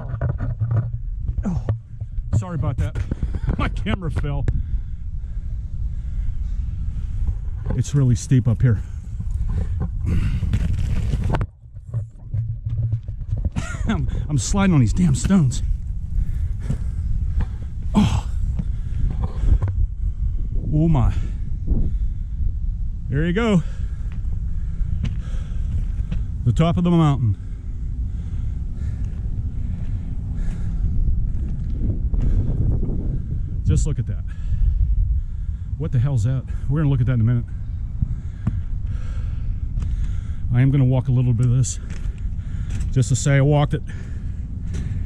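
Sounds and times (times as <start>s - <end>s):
boots crunching on ballast stones: 0.0s - 4.4s, 7.3s - 19.6s
wind buffeting microphone: 0.0s - 45.0s
person breathing out: 10.0s - 10.6s, 16.2s - 20.4s.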